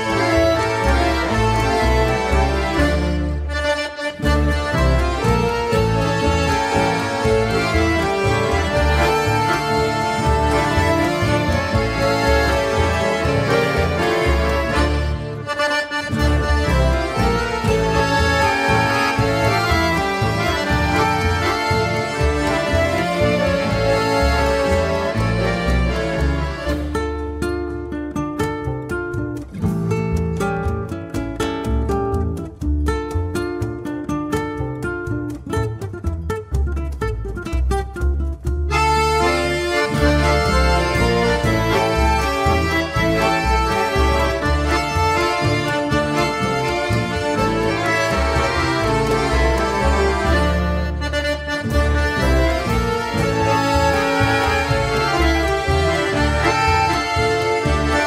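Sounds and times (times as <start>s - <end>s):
accordions holding chords: 0.0s - 58.0s
low bass notes: 0.0s - 58.0s
plucked guitar: 0.0s - 58.0s.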